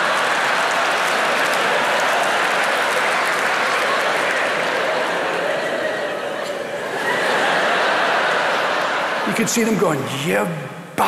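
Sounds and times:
audience applauding: 0.0s - 10.2s.

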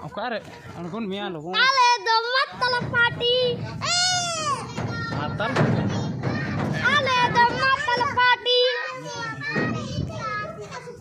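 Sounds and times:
boys shouting: 1.6s - 10.6s.

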